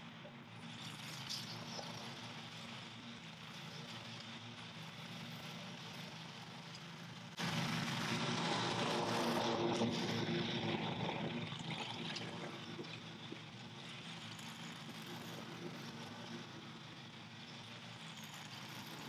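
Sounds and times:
lawn mower engine running: 7.4 - 11.1.

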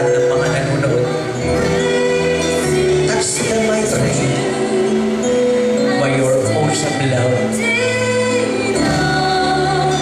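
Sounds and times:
worship song singing: 0.0 - 10.0.

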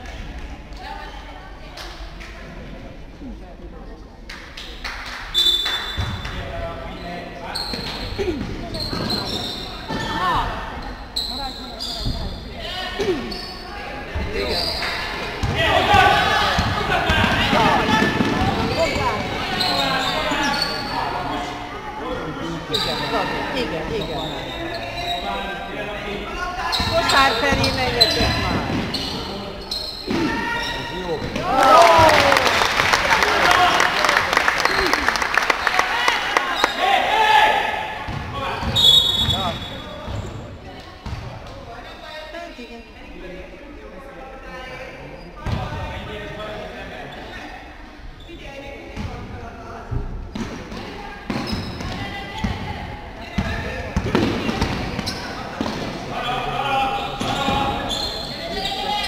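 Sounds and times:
crowd noise: 0.0 - 59.0
players shouting in hall: 15.6 - 20.8, 30.2 - 39.4.

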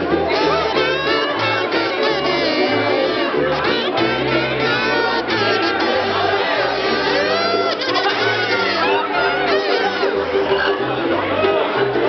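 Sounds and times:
bass line: 0.0 - 12.0
crowd chatter: 0.0 - 12.0
live band music: 0.0 - 12.0.

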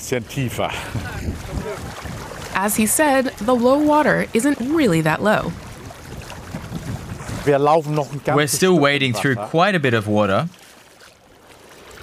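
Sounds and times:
people wading through seawater: 0.0 - 12.0.

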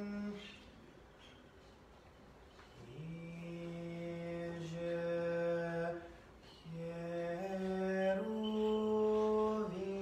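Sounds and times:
man chanting: 2.8 - 10.0.

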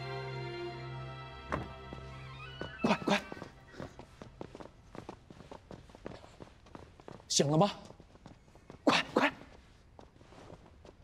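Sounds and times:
drama background music: 0.0 - 3.6
quick footsteps on hard floor: 1.5 - 8.8.

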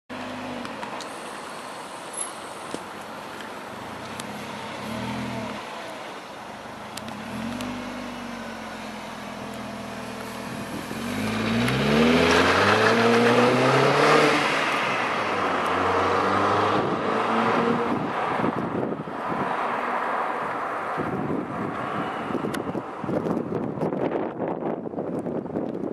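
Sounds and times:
car engine revving and accelerating: 4.1 - 5.8, 7.0 - 18.5.

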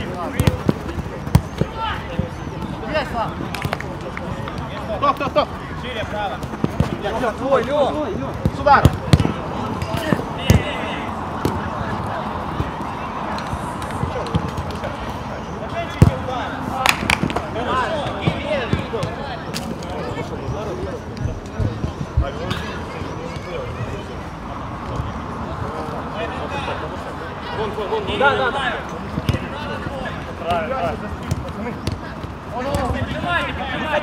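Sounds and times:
players shouting: 0.0 - 20.9, 25.7 - 34.0
football kick thuds: 0.3 - 2.3.

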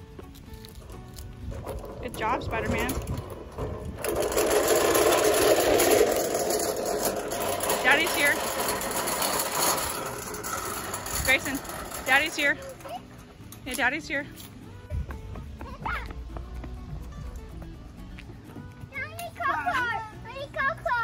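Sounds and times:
toy wagon wheels rattling on concrete: 0.0 - 21.0.

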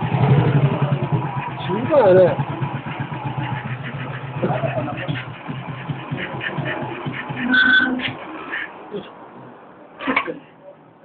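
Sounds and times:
motorcycle engine idling: 0.0 - 7.5.

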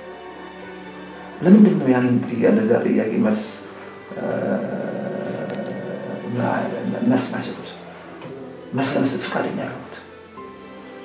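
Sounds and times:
man's drawn-out hesitation sound: 4.1 - 9.3.

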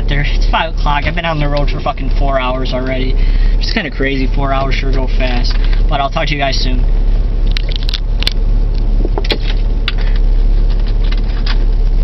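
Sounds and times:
car engine and road rumble: 0.0 - 12.0
sharp clicks and rattles: 0.2 - 3.0, 3.6 - 6.1, 7.4 - 12.0.

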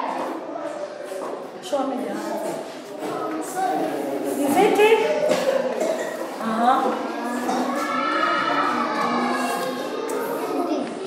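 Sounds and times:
children chanting in unison: 6.4 - 11.0.

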